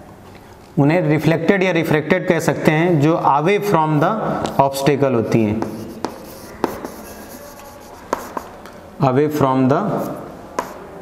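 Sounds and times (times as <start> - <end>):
chalk tapping: 5.4 - 8.8, 10.0 - 11.0
chalk scratching on chalkboard: 5.5 - 8.6, 10.0 - 11.0.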